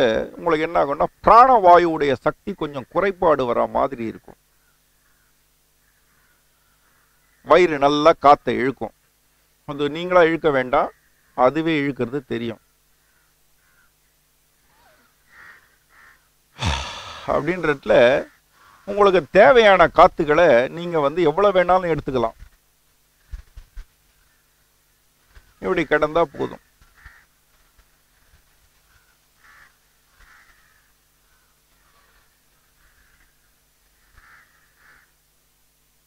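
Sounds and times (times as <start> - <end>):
faint bird calls: 4.2 - 7.6, 10.8 - 11.4, 12.6 - 19.0, 23.2 - 35.2
crows cawing: 4.6 - 7.4, 13.0 - 14.0, 14.8 - 17.7, 18.3 - 19.0, 26.8 - 35.2.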